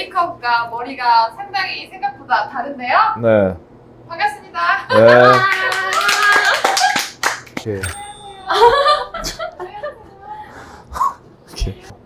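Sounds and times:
hands clapping: 5.3 - 8.0.

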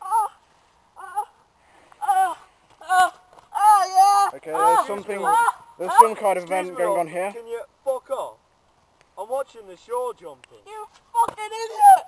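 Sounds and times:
person crying out high-pitched: 0.0 - 0.4, 1.0 - 1.3, 2.0 - 5.6, 11.6 - 12.0.

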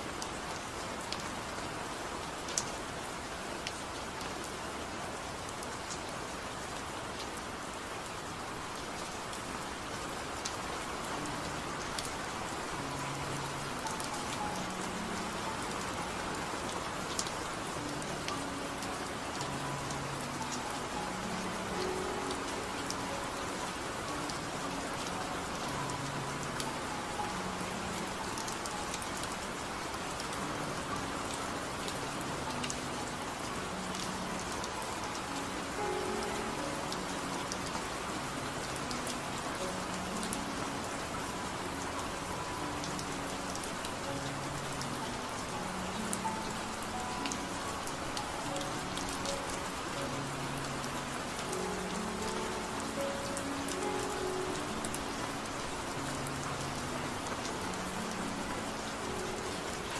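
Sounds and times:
slow soft music: 0.0 - 59.9
steady rain: 0.0 - 59.9.

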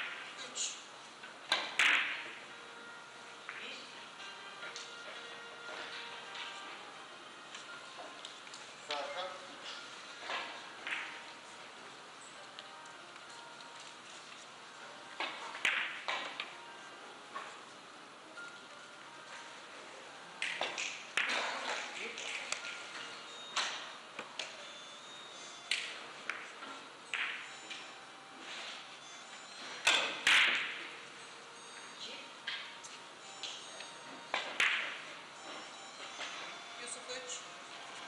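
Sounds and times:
billiard balls clicking: 1.5 - 2.3, 10.4 - 11.2, 15.2 - 16.5, 20.4 - 22.9, 25.6 - 27.9, 34.3 - 35.1
cue striking ball: 1.5 - 2.3, 15.2 - 16.4, 27.1 - 27.4, 29.9 - 30.9, 34.3 - 35.0.

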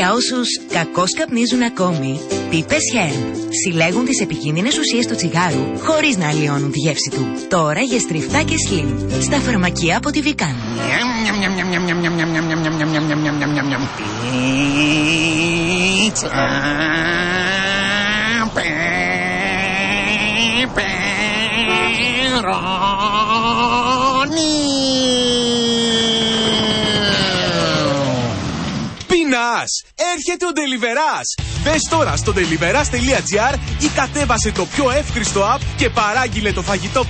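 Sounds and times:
motorbike engine: 10.5 - 29.1
droning tone sinking in pitch: 19.8 - 23.2.

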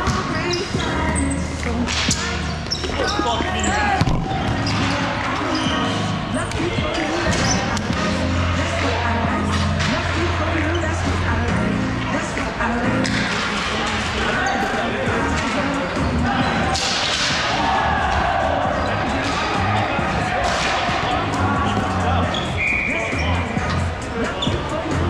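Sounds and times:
background music: 0.0 - 25.0
players' voices: 0.0 - 25.0
volleyball hits: 2.8 - 5.2.

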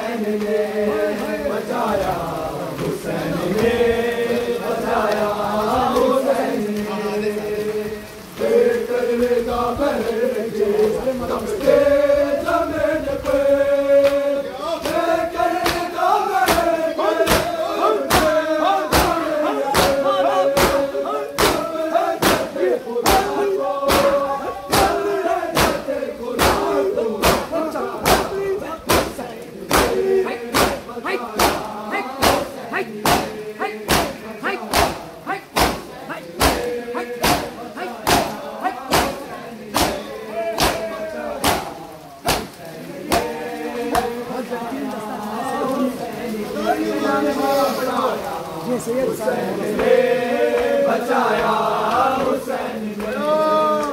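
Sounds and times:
men chanting together: 0.0 - 53.9
hands slapping chests: 14.8 - 25.0, 25.6 - 25.8, 26.4 - 43.3.

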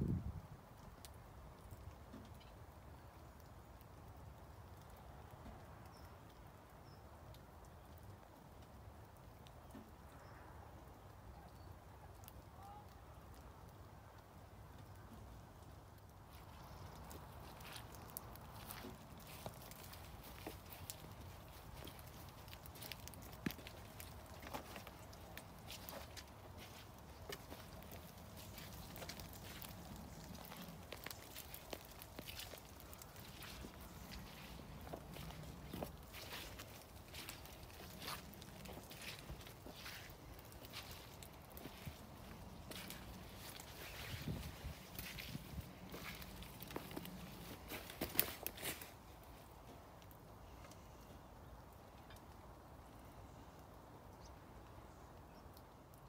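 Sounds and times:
footsteps on leaf-littered path: 16.2 - 49.8.

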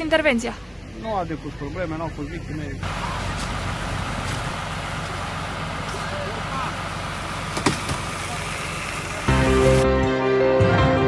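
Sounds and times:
fire engine idling: 0.0 - 9.8
faint voices: 0.4 - 7.1.

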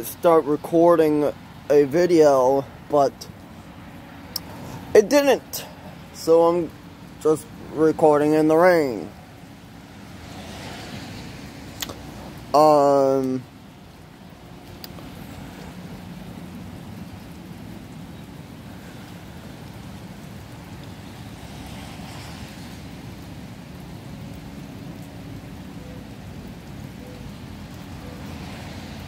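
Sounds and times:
steady rain falling: 0.0 - 29.0.

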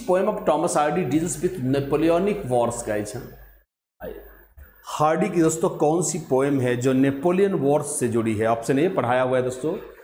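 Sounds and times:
faint room noise: 0.0 - 10.0
man speaking: 0.0 - 10.0.

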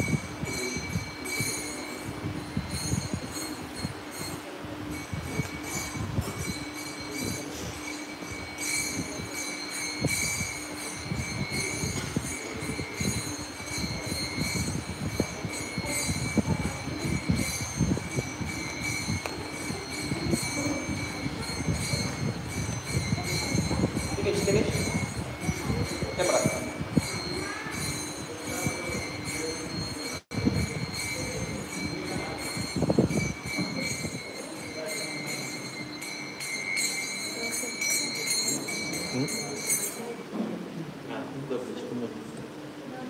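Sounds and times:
hand cymbals ringing: 0.0 - 40.4
murmur of voices: 0.0 - 43.0.

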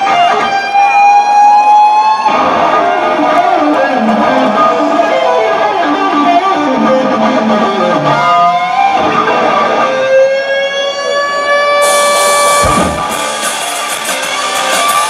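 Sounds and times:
electric guitar solo: 0.0 - 15.0
cymbal crash: 11.8 - 15.0
drums: 11.8 - 15.0.

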